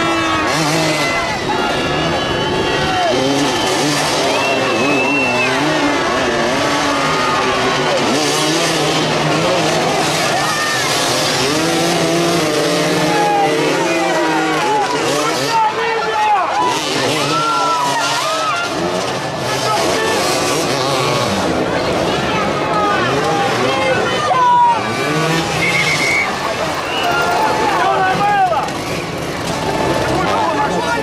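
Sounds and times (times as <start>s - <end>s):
crowd talking: 0.0s - 31.0s
motorcycles revving: 0.0s - 31.0s.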